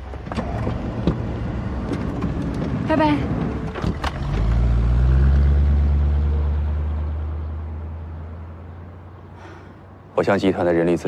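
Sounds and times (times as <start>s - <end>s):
van engine driving off: 0.0s - 9.7s.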